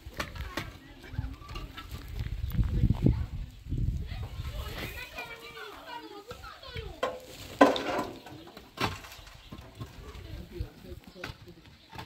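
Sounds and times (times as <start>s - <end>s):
concrete blocks knocking and scraping: 0.0s - 2.7s, 4.2s - 12.0s.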